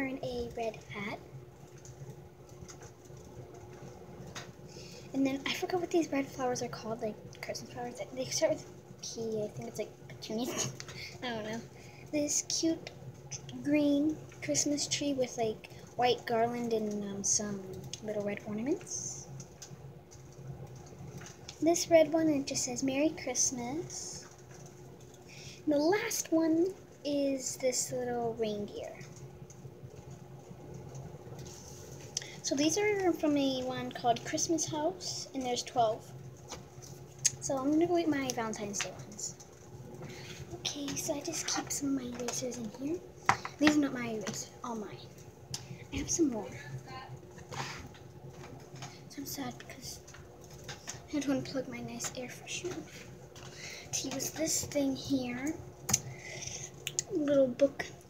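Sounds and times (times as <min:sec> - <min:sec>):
faint low hum: 0:00.0 - 0:58.0.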